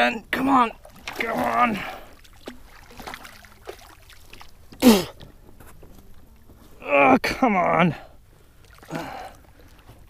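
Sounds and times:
water splashing: 0:00.0 - 0:05.4, 0:08.5 - 0:10.0.

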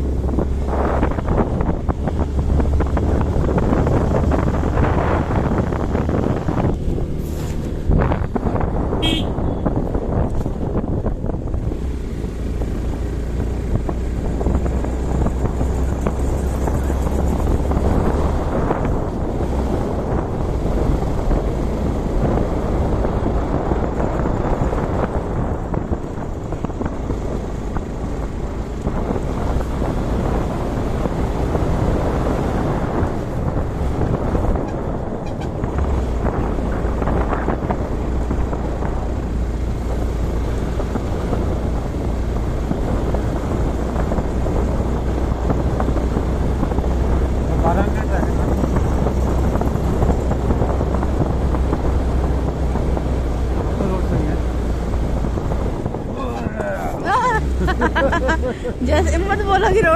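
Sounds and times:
motorcycle engine rumbling: 0:00.0 - 0:59.9
wind rushing over microphone: 0:00.0 - 0:59.9.

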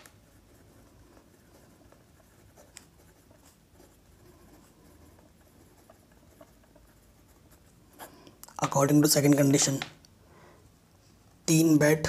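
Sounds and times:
pen scratching on paper: 0:00.0 - 0:08.2.

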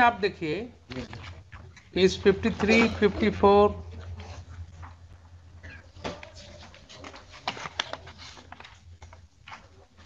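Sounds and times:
person speaking: 0:00.0 - 0:04.4
steady low hum: 0:00.0 - 0:10.0.

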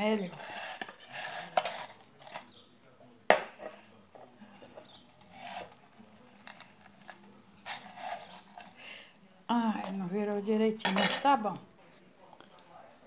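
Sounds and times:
scraping in a pan: 0:00.1 - 0:08.8
metal cookware clank: 0:10.8 - 0:11.4.

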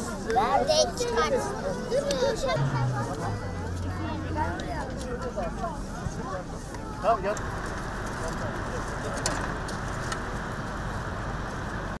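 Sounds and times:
indistinct voices: 0:00.0 - 0:07.5.

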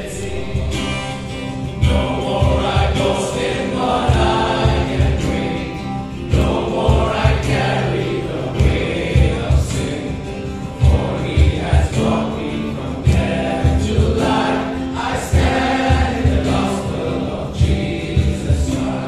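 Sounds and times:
congregation singing a hymn: 0:00.0 - 0:19.0
instrumental accompaniment with beat: 0:00.0 - 0:19.0.

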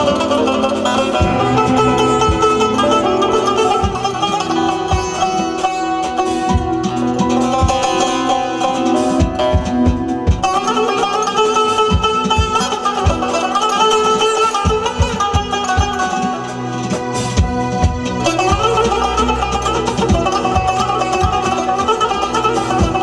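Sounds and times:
low thumps: 0:00.0 - 0:08.0
plucked lute notes: 0:00.0 - 0:23.0
regular low beat: 0:00.0 - 0:23.0
held low backing tones: 0:01.0 - 0:05.6.

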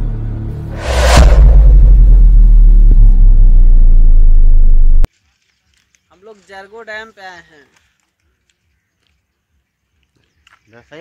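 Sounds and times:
deep bass rumble: 0:00.4 - 0:05.1.

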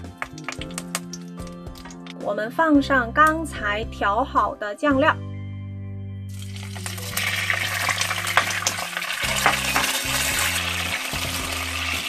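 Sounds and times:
oil sizzling in a wok: 0:06.3 - 0:12.0.

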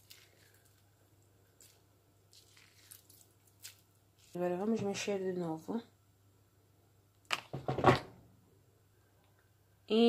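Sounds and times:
meat squelching in marinade: 0:00.0 - 0:04.4.

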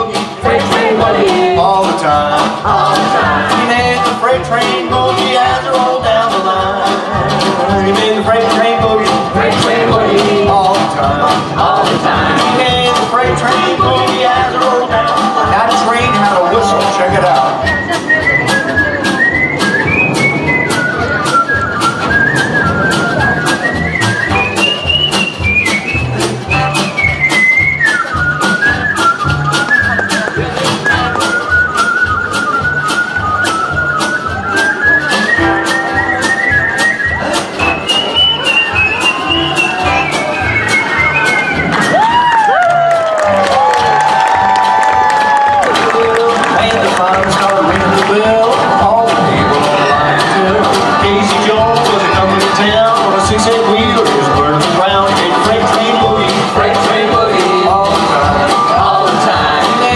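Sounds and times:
bluegrass band playing: 0:00.0 - 0:59.9
whistled melody: 0:16.5 - 0:45.6, 0:49.6 - 0:53.3.

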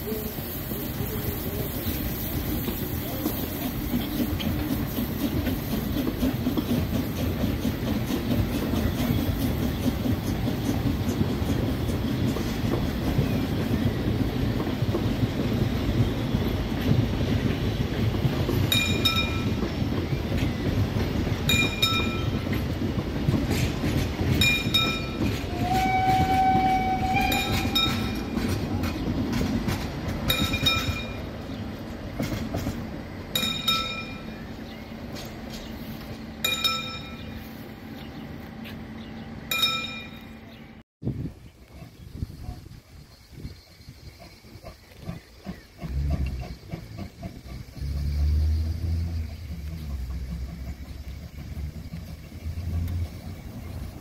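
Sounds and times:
train coaches rumbling past: 0:00.0 - 0:54.0
bell striking: 0:18.7 - 0:19.6, 0:21.5 - 0:22.4, 0:30.3 - 0:31.3, 0:33.4 - 0:34.4, 0:36.4 - 0:37.3, 0:39.5 - 0:40.4
short train whistle: 0:25.5 - 0:28.0.

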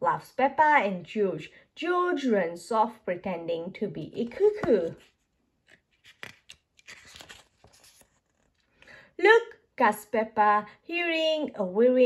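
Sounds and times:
book page turning: 0:04.2 - 0:08.8.

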